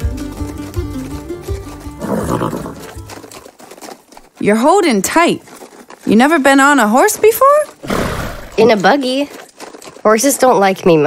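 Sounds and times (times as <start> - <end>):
plucked string music: 0.0 - 2.1
horse neighing: 2.0 - 3.0, 7.8 - 8.9.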